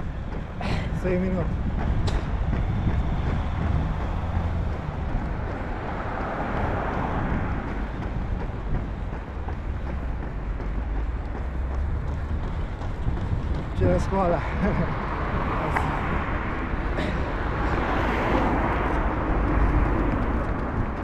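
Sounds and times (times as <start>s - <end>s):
car passing: 0.0s - 21.0s
low traffic rumble: 0.0s - 21.0s.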